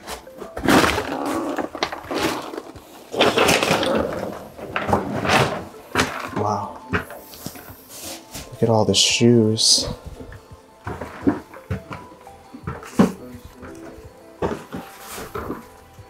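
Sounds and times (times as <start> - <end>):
rustling and scraping while crawling: 0.0 - 8.8, 9.8 - 16.0.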